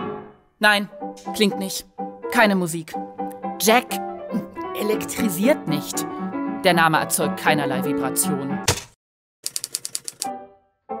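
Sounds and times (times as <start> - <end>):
typewriter-like keystroke clatter: 8.7 - 10.3.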